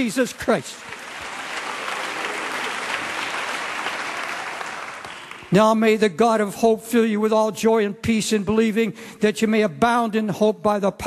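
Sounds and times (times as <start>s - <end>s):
congregation applauding: 0.0s - 5.7s.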